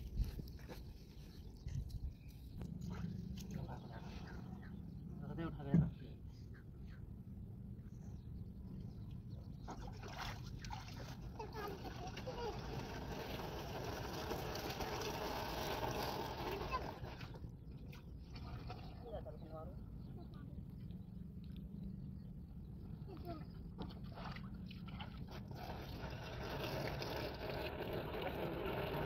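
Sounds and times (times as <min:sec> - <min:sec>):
low steady rumble: 0:00.0 - 0:29.0
water pouring from plastic can: 0:09.9 - 0:17.4, 0:25.0 - 0:29.0.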